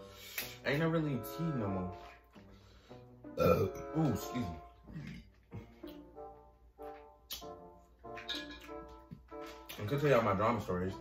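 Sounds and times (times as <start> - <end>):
quiet background music: 0.0 - 11.0
man burping: 3.3 - 4.0, 4.8 - 5.4.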